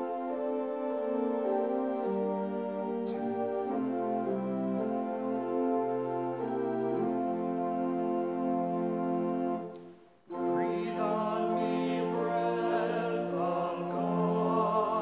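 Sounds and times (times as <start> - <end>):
organ-like keyboard chords: 0.0 - 15.0.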